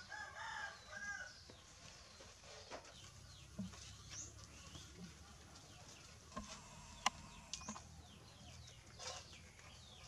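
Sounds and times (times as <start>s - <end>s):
rooster crowing: 0.0s - 1.3s.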